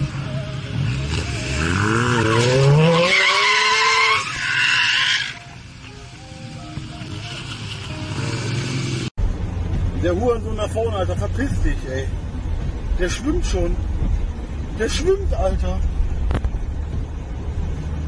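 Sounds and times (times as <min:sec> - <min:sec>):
engine revving: 0:00.0 - 0:05.4, 0:06.8 - 0:09.1
tyres squealing and skidding: 0:00.8 - 0:05.7.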